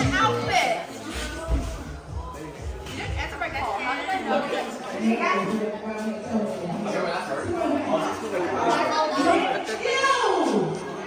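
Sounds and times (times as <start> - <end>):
young people chattering: 0.0 - 11.0.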